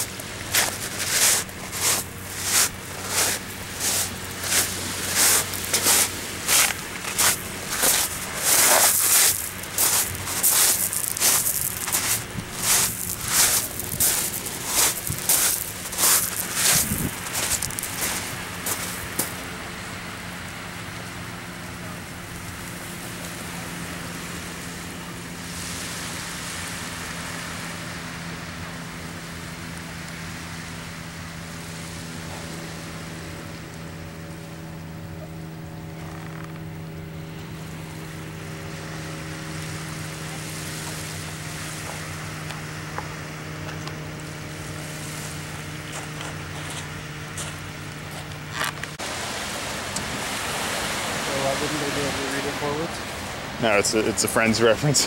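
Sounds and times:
surf: 0:00.0 - 0:55.0
wind rushing: 0:07.2 - 0:18.5.

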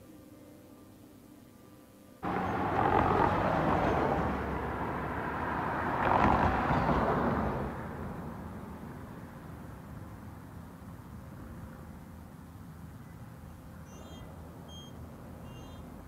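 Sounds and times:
street traffic: 0:02.2 - 0:16.0.

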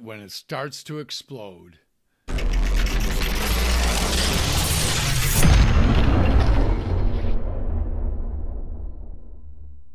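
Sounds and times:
loud deep rumbling: 0:02.3 - 0:09.9.

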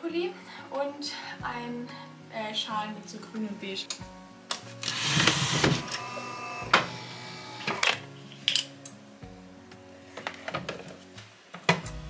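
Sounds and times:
coffee machine whirring: 0:04.8 - 0:07.9.

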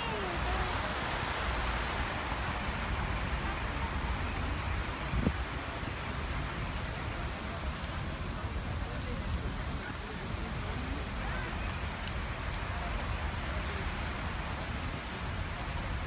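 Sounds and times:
people's voices: 0:00.0 - 0:01.2, 0:02.9 - 0:16.0.

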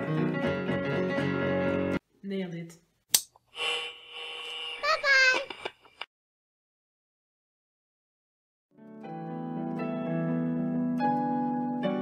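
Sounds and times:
sharp click: 0:03.1 - 0:03.4
steady held tone: 0:03.5 - 0:05.4.

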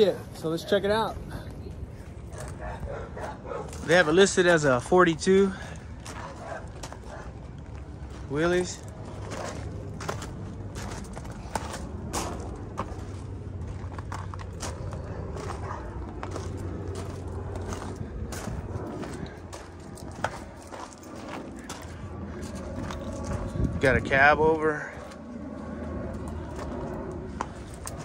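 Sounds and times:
steady low hum: 0:00.0 - 0:28.0
footsteps crunching on gravel: 0:01.9 - 0:04.6, 0:05.6 - 0:24.2, 0:25.0 - 0:28.0.

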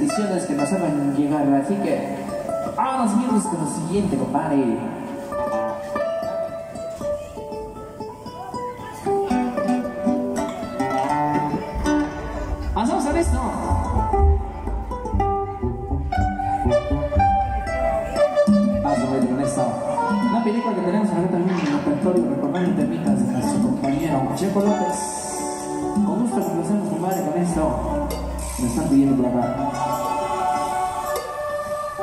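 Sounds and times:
song over loudspeaker: 0:11.0 - 0:15.0, 0:15.8 - 0:32.0
deep bass: 0:11.7 - 0:19.5.

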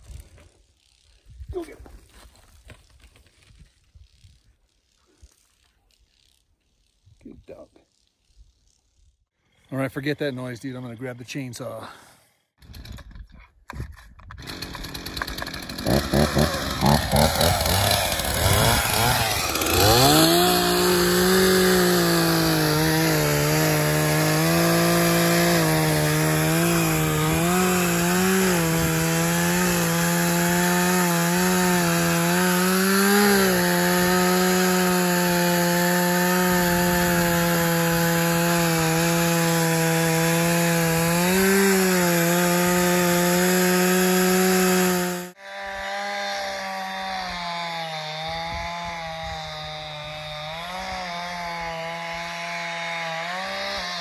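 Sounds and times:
chainsaw revving and cutting wood: 0:12.6 - 0:13.1, 0:14.3 - 0:54.0.

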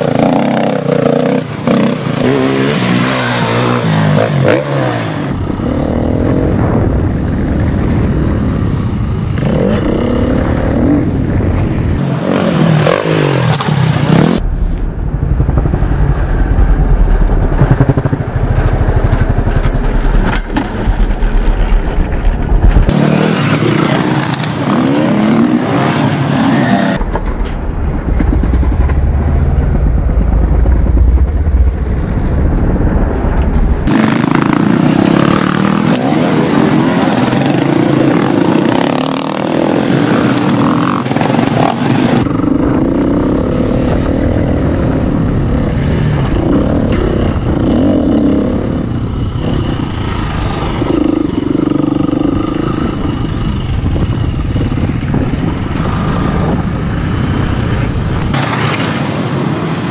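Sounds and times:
dirt bike engines revving: 0:00.0 - 0:14.4, 0:22.8 - 0:27.0, 0:33.8 - 0:59.9
rushing noise: 0:00.0 - 0:59.9.

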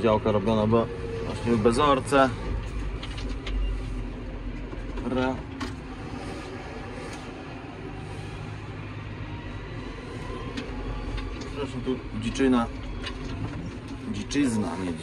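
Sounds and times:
tractor diesel engine rumble: 0:00.0 - 0:15.0.

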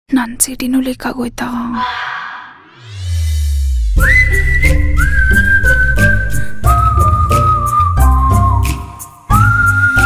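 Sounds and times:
bass line: 0:02.8 - 0:08.7
whistled melody: 0:03.9 - 0:10.0.

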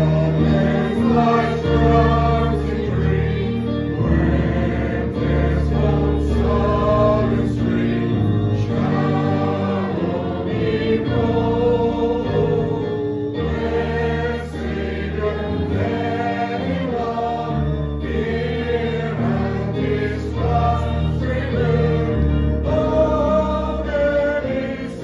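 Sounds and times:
congregation singing a hymn: 0:00.0 - 0:25.0
instrumental accompaniment low notes: 0:00.0 - 0:25.0.

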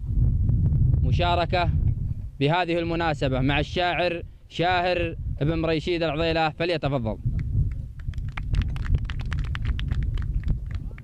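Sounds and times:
steady low rumble: 0:00.0 - 0:06.1.

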